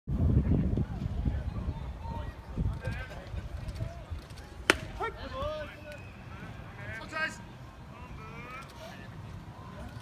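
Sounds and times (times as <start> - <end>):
sharp pop: 4.6 - 5.0.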